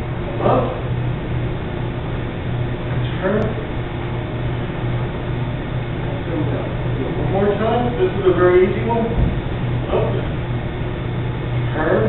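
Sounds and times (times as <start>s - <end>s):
pulsing low hum: 0.0s - 12.0s.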